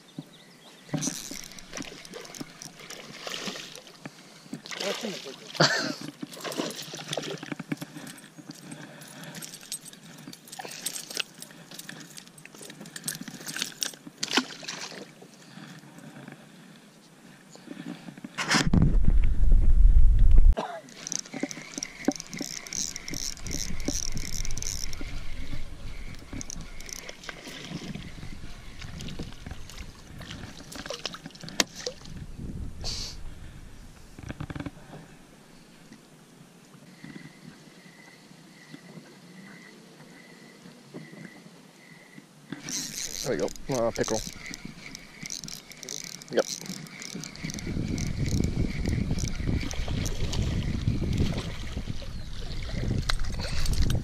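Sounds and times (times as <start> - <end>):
reel ticking whir: 0.9 - 3.2, 20.9 - 30.9, 42.6 - 51.3
fishing reel clicks: 1.0 - 3.0, 20.9 - 27.4, 42.6 - 50.2
loud low rumble: 18.9 - 20.6.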